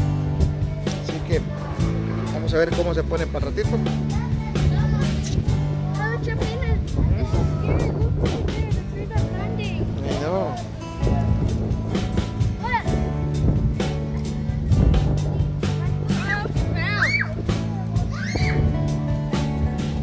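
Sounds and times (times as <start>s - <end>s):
children's voices: 0.1s - 19.9s.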